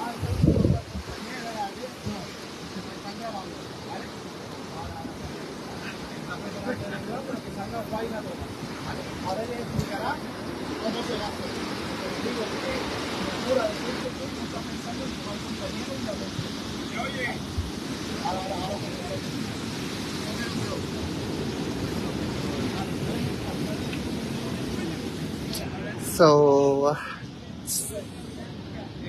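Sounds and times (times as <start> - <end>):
people chattering faintly: 0.0 - 29.0
surf rushing: 0.0 - 29.0
wind: 0.0 - 29.0.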